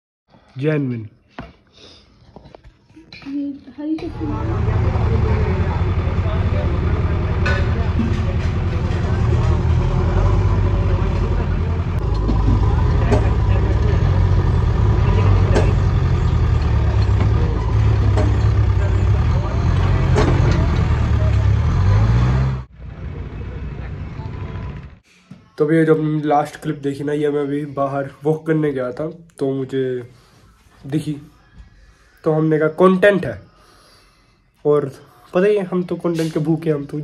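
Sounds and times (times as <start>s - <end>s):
heavy diesel machinery rumbling: 4.0s - 25.0s
metal knocks and clanks: 7.2s - 9.8s, 12.0s - 21.6s.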